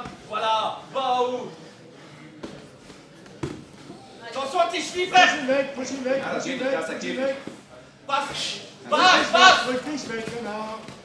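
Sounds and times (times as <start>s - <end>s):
man shouting: 8.9s - 9.8s.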